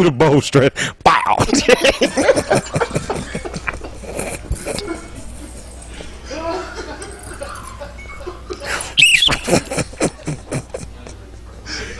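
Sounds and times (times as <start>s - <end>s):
high squealing laugh: 1.2s - 10.9s
hearty laughter bursts: 1.4s - 11.2s.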